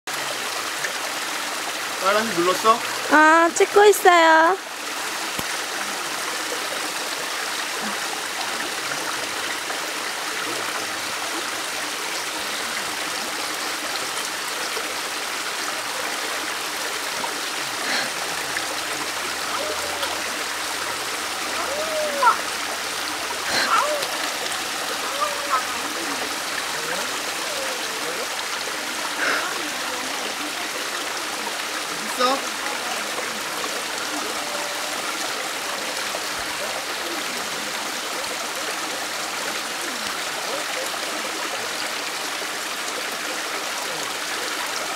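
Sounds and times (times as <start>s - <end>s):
stream running over stones: 0.1s - 44.9s
short voice sounds: 21.6s - 22.4s, 23.5s - 24.2s, 25.0s - 26.2s.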